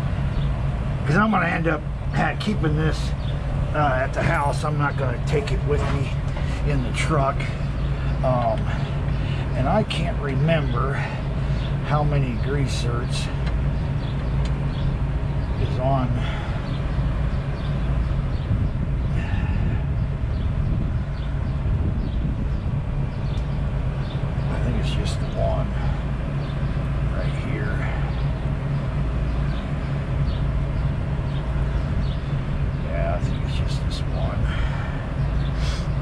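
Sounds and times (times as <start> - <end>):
diesel truck engine idling: 0.0 - 36.0.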